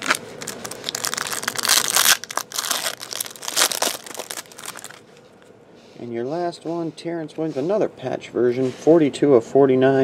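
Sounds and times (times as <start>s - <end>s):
plastic wrapper crinkling and tearing: 0.0s - 5.0s.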